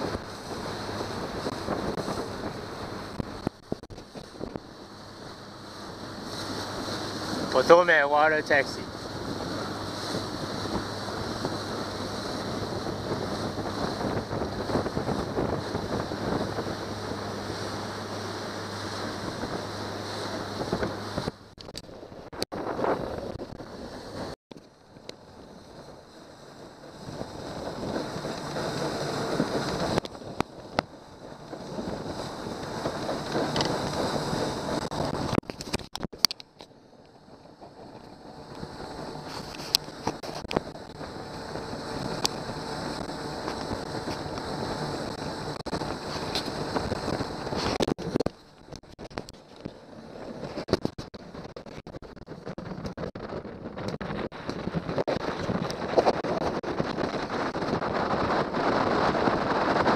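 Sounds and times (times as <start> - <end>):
outboard motor running: 0.0 - 59.9
water rushing and splashing: 0.0 - 59.9
wind buffeting microphone: 0.0 - 59.9.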